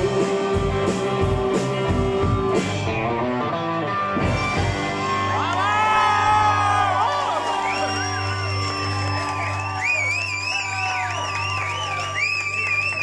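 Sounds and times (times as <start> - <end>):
live rock band holding chord: 0.0 - 9.2.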